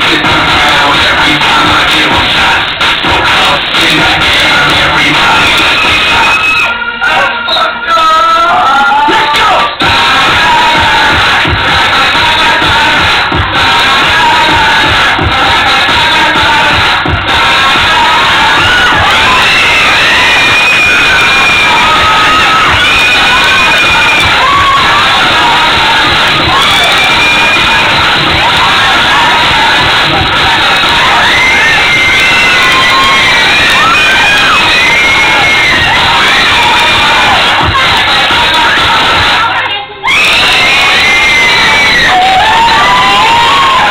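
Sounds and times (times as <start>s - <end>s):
crowd cheering and shouting: 0.0s - 43.9s
dance music: 0.0s - 43.9s.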